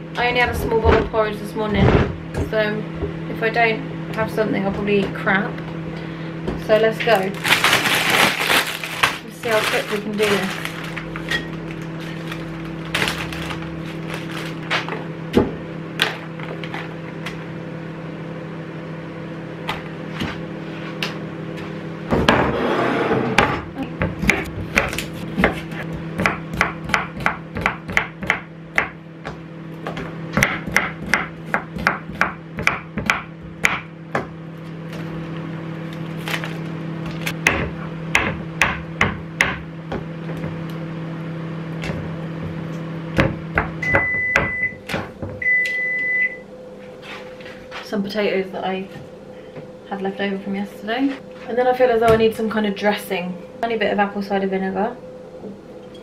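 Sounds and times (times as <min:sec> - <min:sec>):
microwave oven humming: 0:00.0 - 0:56.0
knife chopping on wooden board: 0:23.4 - 0:34.3, 0:37.4 - 0:40.1
microwave beeps: 0:43.8 - 0:46.5.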